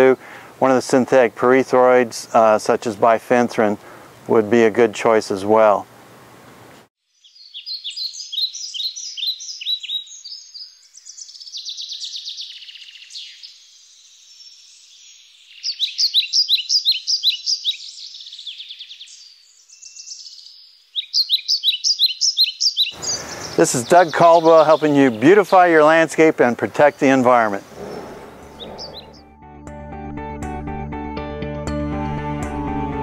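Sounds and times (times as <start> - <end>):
songbirds chirping and trilling: 0.0 - 29.3.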